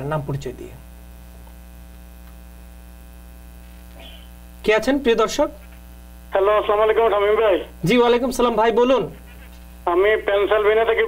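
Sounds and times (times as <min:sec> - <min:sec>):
electrical mains hum: 0:00.0 - 0:11.0
person's voice over telephone: 0:06.3 - 0:09.2, 0:09.8 - 0:11.0.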